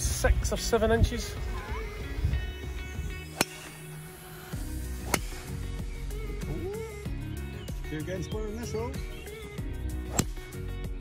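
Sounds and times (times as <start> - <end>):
background music: 0.0 - 11.0
golf driver striking ball: 3.3 - 3.8, 4.9 - 5.6, 10.1 - 10.4.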